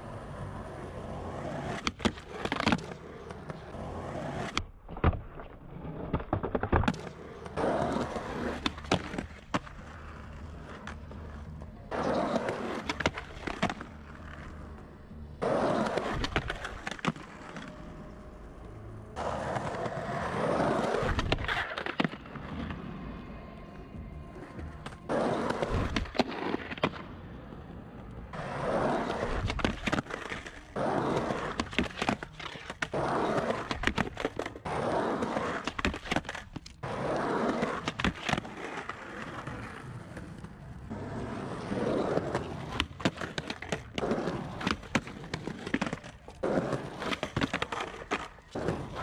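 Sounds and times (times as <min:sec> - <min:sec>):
skateboard rolling on concrete: 0:00.0 - 0:49.0
skateboard clacks: 0:24.3 - 0:49.0.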